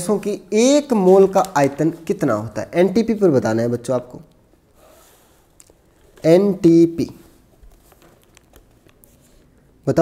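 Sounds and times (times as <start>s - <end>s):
man speaking: 0.0s - 4.3s, 6.2s - 7.4s.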